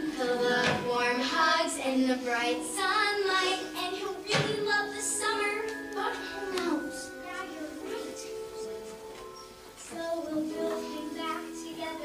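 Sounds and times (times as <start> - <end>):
child singing: 0.0 - 12.0.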